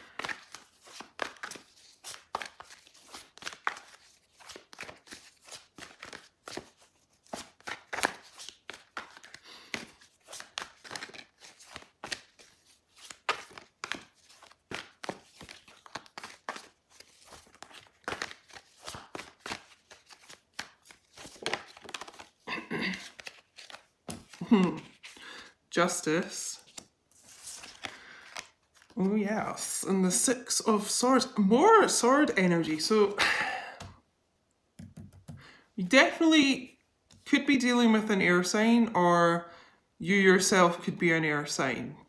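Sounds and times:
cards being shuffled: 0.0s - 25.5s, 26.2s - 29.6s.

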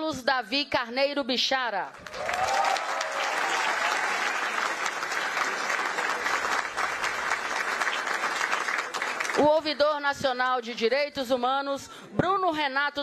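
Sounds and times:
large audience clapping: 2.0s - 9.7s.

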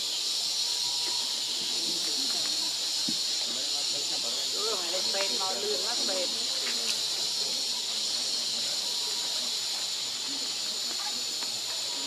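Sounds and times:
high-pitched insect drone: 0.0s - 12.0s
faint voices talking: 0.2s - 12.0s.

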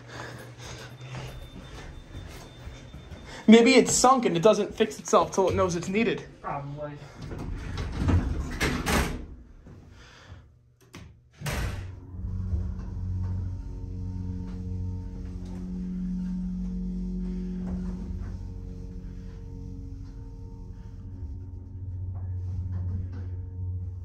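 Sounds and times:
elevator doors sliding shut: 7.2s - 9.5s
elevator motor humming: 10.8s - 24.0s.

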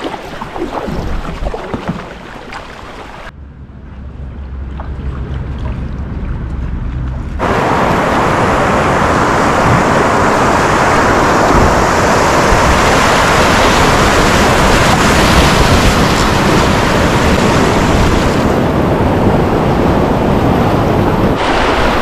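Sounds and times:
white water rushing around kayak: 0.0s - 3.3s, 7.4s - 22.0s.

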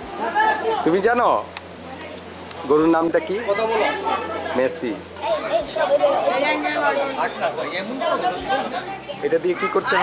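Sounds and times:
children talking: 1.8s - 10.0s.

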